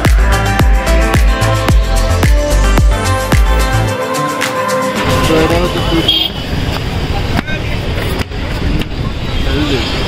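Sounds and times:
voices talking: 5.0 - 10.0.

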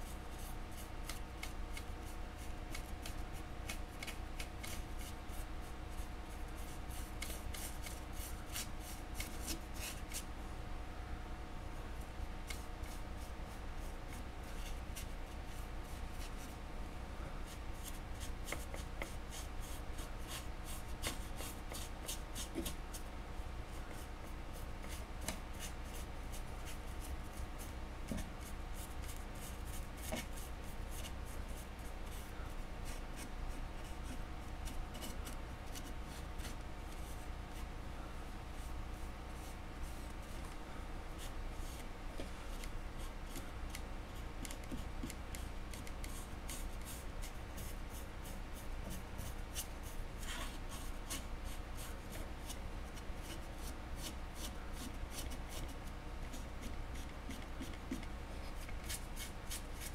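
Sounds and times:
steady low hum: 0.0 - 59.9
paintbrush scratching paint: 0.4 - 10.2, 44.4 - 59.9.

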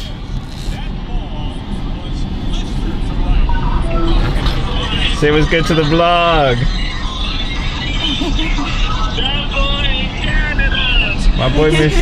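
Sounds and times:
faint voices: 0.0 - 12.0
road noise inside vehicle: 0.0 - 12.0.

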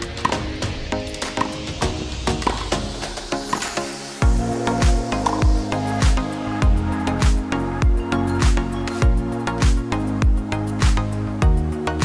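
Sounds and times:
music with percussive beat: 0.0 - 12.0.

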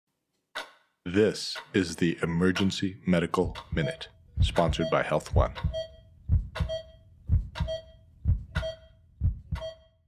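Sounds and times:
heartbeat thumps: 3.4 - 9.8
short beeps: 4.6 - 10.0.

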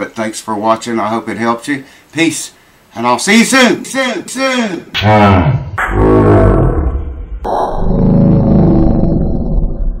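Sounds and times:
loud roar falling in pitch: 5.0 - 10.0.

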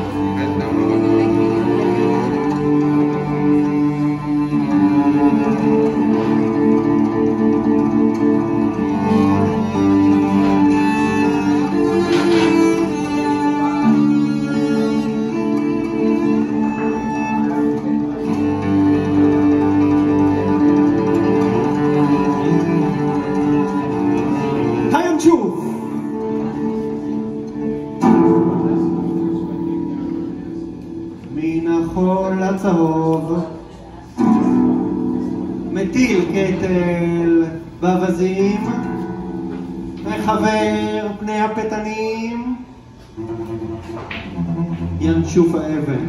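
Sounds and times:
plucked guitar notes: 0.0 - 41.9, 42.6 - 46.0
bowed cello notes: 0.0 - 46.0.

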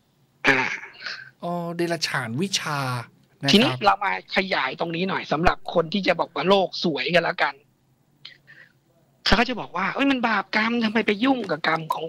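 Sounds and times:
person clearing throat: 0.4 - 1.3
person speaking: 1.2 - 7.3, 9.4 - 12.0.

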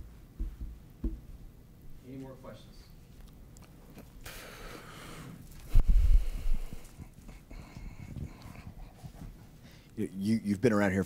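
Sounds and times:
quiet knocks: 0.4 - 1.4
microphone handling thumps: 0.4 - 1.5.

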